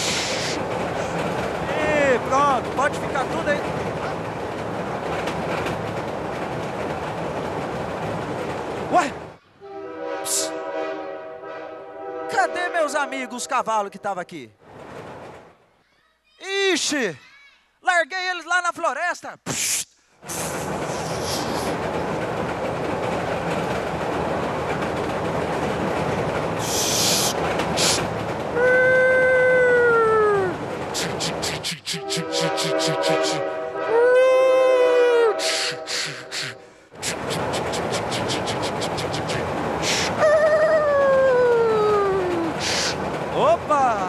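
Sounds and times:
train running noise: 0.0 - 15.8, 19.6 - 44.0
train horn blasts: 9.6 - 13.5, 32.0 - 34.0, 34.7 - 36.0.

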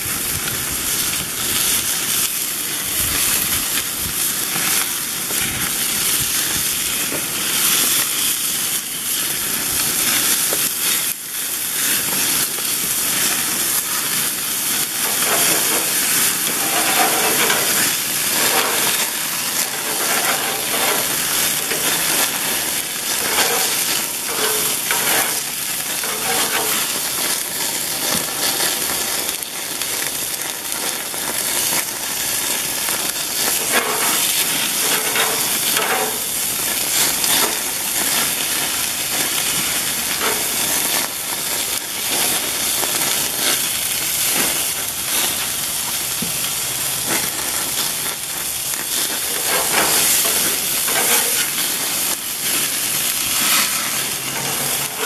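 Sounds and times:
fat crackling in fire: 0.0 - 55.0
patties sizzling on grill: 0.0 - 55.0.

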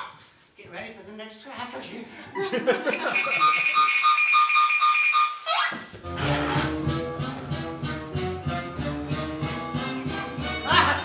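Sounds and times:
man laughing: 2.3 - 3.8, 10.7 - 11.0.

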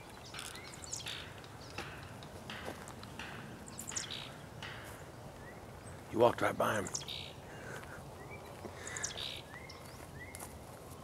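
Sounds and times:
faint bird chirps: 8.2 - 10.5
footsteps crunching dry leaves: 9.6 - 11.0.

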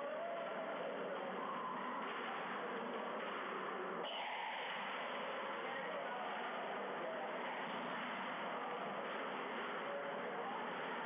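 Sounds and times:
background hum of busy hall: 0.0 - 11.0
faint distant voices: 0.0 - 11.0.

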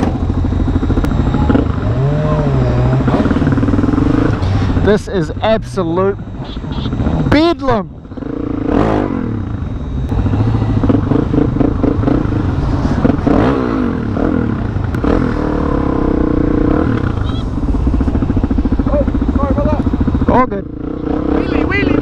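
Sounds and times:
motorcycle engine revving: 0.0 - 22.0.

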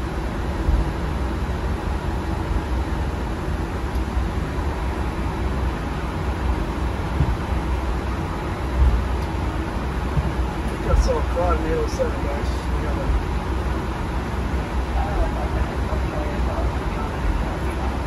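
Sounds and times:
airliner rumbling on runway: 0.0 - 18.0
low bumps: 6.6 - 7.9, 8.7 - 11.2.

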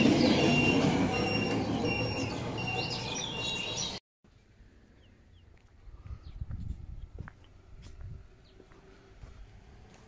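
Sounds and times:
birds chirping: 0.0 - 4.0, 4.9 - 9.0.

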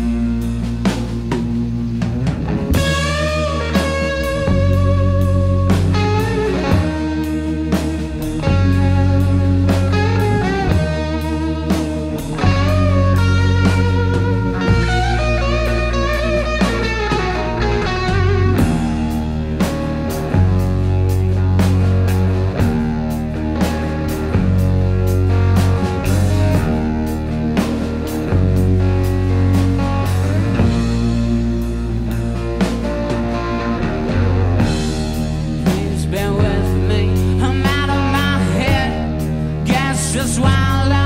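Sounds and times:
drum kit steady beat: 0.0 - 41.0
electric bass: 0.0 - 41.0
electric guitar lead with bent notes: 0.0 - 41.0.

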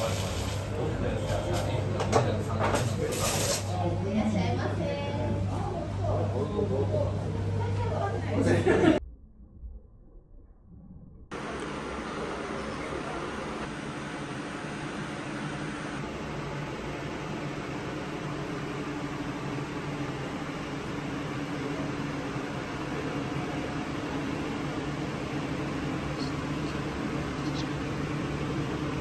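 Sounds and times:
ventilation unit hum and air rush: 0.0 - 9.0, 11.3 - 29.0.

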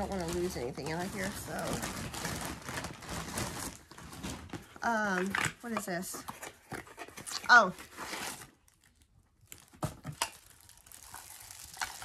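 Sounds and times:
plastic packaging crinkling: 0.0 - 12.0.

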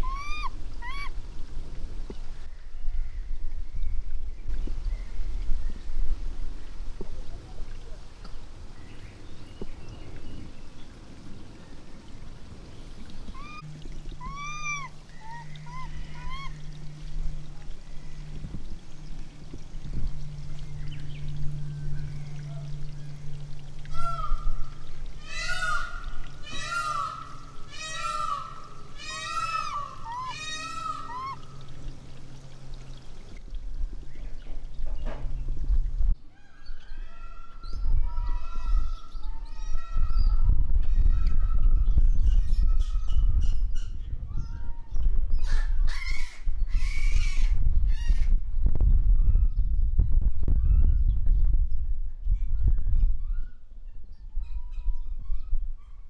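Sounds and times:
monkeys giving coo calls: 0.0 - 1.1, 13.3 - 16.7, 25.2 - 31.7.

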